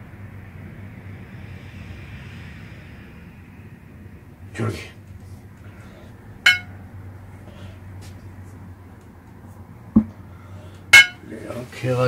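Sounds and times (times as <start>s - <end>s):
brush clinking on ceramic: 6.5s - 6.7s
short dull thump: 10.0s - 10.2s.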